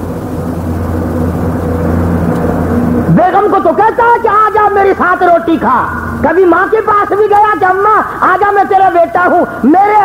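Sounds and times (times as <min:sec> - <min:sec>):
low mechanical drone: 0:00.0 - 0:10.0
man speaking: 0:03.1 - 0:10.0.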